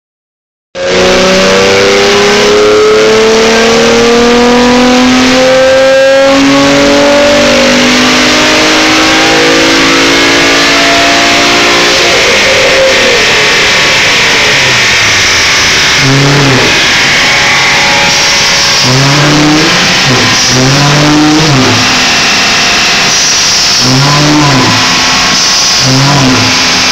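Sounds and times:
car engine revving hard: 0.8 - 26.9.

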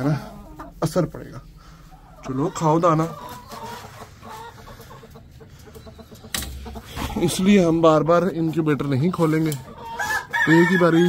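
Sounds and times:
chickens clucking: 0.0 - 11.0.

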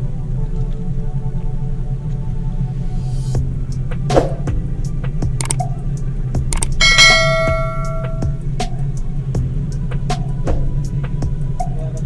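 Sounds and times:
steady low hum: 0.0 - 12.0
sharp clicks: 5.4 - 5.7, 6.5 - 6.8
bright bell-like ding: 6.8 - 8.4.

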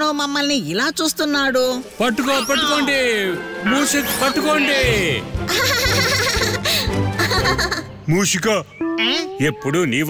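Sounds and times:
background music: 0.2 - 10.0
child giggling: 5.5 - 7.9.

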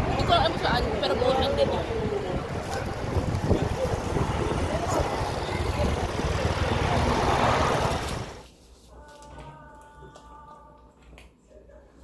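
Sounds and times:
traffic rumble: 0.0 - 8.4
voices: 0.0 - 8.4.

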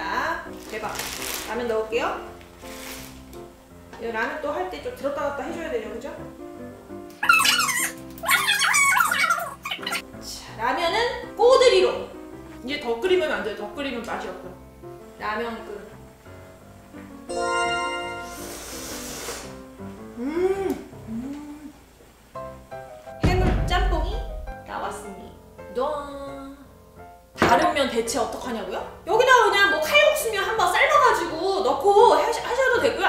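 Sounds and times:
light background music: 0.0 - 33.0
person slurping noodles: 18.4 - 19.6
person humming: 20.1 - 21.8.

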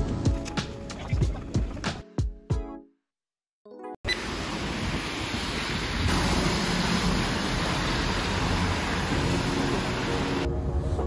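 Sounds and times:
music: 0.0 - 4.0, 9.5 - 11.0
wet street noise hiss: 4.1 - 10.9.

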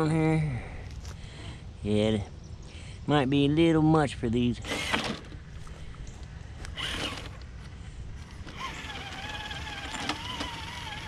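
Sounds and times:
electric motor whining: 4.6 - 5.3, 6.6 - 7.4, 8.2 - 11.0.

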